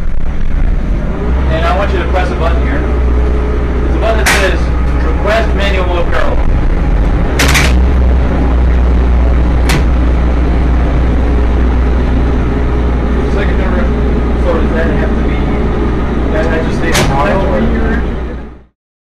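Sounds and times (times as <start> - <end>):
industrial generator drone: 0.0 - 18.7
sharp clicks: 7.4 - 8.0.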